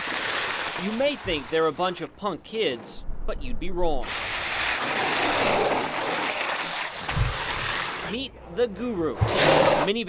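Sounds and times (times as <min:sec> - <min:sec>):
longboard wheels on asphalt: 0:00.0 - 0:02.0, 0:04.0 - 0:08.2.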